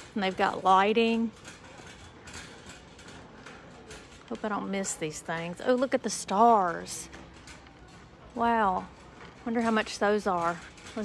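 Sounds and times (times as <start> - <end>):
shopping cart rattling on concrete: 0.0 - 11.0.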